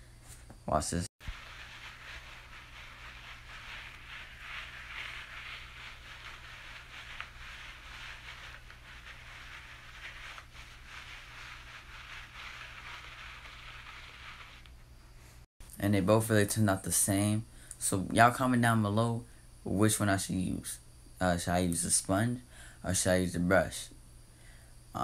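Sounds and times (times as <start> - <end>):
sponge rubbing on hair: 1.2 - 14.8.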